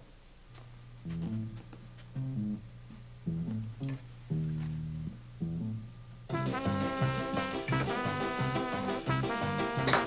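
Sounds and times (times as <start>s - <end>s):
plucked bass line: 1.1s - 1.6s, 2.2s - 8.6s.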